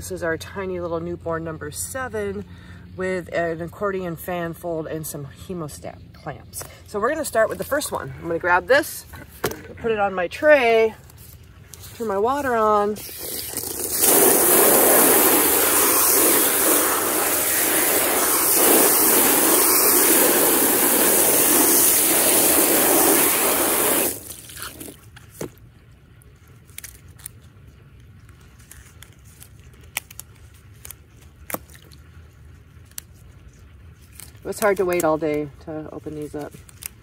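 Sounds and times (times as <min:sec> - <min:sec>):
hose nozzle spraying water: 0:12.0 - 0:25.1.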